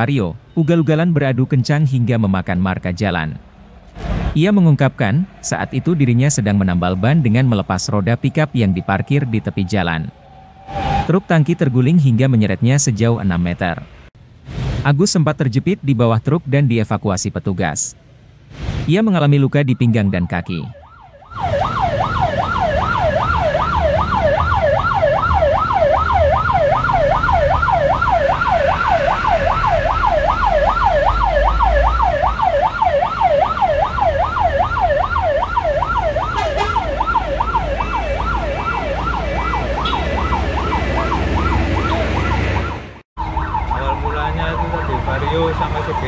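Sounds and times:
road traffic rumble: 0.0s - 15.0s, 15.6s - 46.0s
electronic yelp siren: 7.2s - 12.2s, 19.6s - 46.0s.

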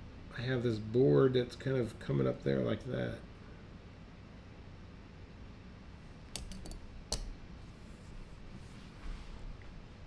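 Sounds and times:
small sharp clicks: 6.3s - 7.3s.

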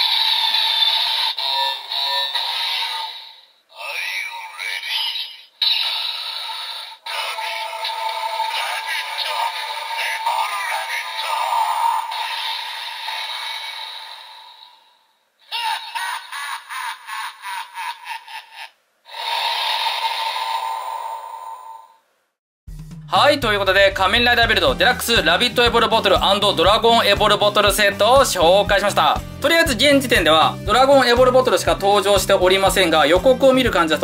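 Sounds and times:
toy speaker music: 0.0s - 14.8s
synthesized voice calls: 0.0s - 16.0s.

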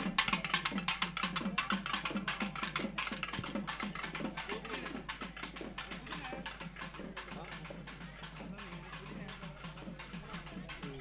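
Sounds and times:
faint voices: 0.0s - 11.0s
fast frame drumming: 0.0s - 11.0s.

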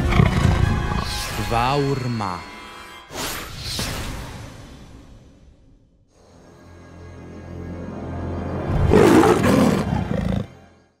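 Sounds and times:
panther roar: 8.9s - 10.6s.

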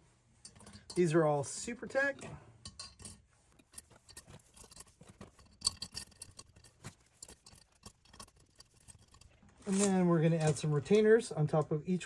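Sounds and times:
metal springs clicking and clinking: 0.4s - 10.8s.

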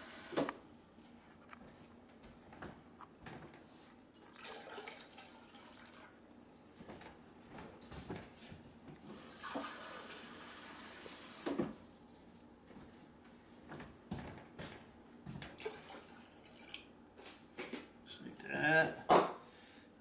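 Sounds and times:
faucet running water into a cup: 4.2s - 6.2s, 9.1s - 11.6s.

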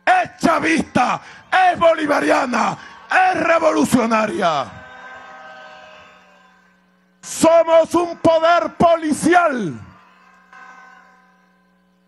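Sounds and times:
low steady hum: 0.0s - 12.0s
faint ringing tone: 0.2s - 12.0s.

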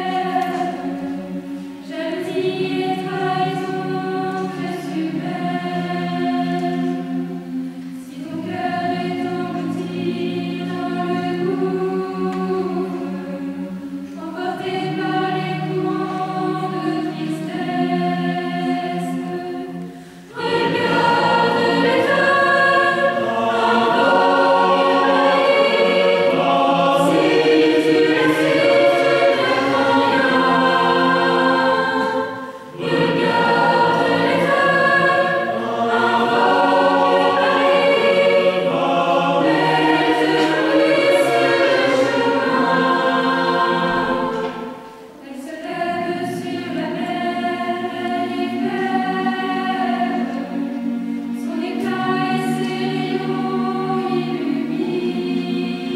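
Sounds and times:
mixed choir singing: 0.0s - 55.9s.

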